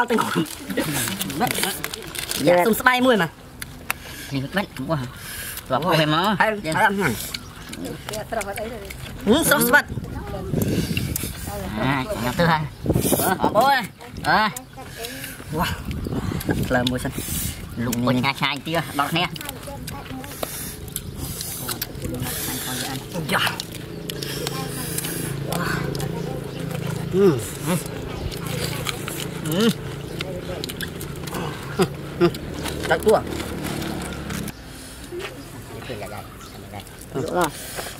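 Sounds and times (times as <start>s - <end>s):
steady low hum: 0.0s - 37.9s
voices: 0.0s - 37.9s
man humming while chewing: 20.4s - 32.6s.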